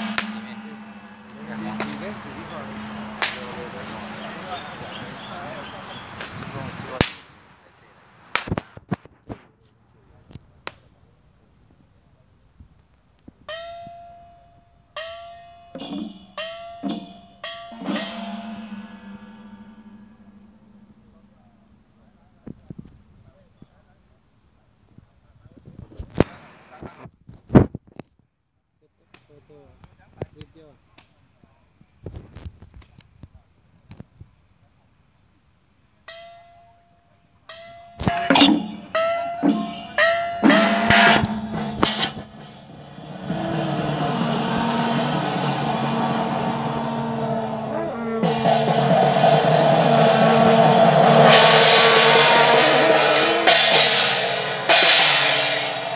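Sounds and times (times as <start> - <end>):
lower gong ringing: 0.0 - 4.4, 15.8 - 21.2, 38.0 - 55.9
higher gong ringing: 0.0 - 4.6, 17.7 - 21.4, 38.0 - 55.9.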